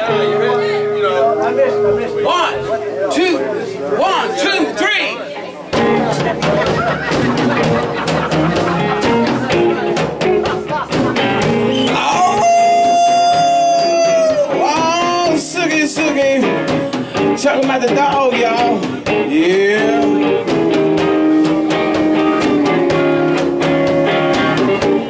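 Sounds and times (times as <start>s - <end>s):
drums: 0.0s - 25.0s
electric guitar playing: 0.0s - 25.0s
live blues band: 0.0s - 25.0s.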